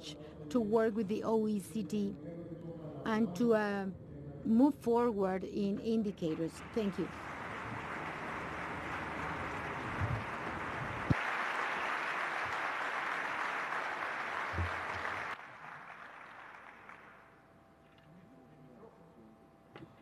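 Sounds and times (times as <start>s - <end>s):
audience applauding: 6.5s - 17.3s.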